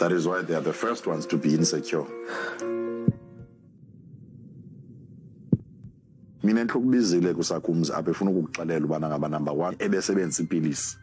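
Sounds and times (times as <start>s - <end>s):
low steady rumble: 3.6s - 6.4s
deep thump: 5.5s - 6.0s.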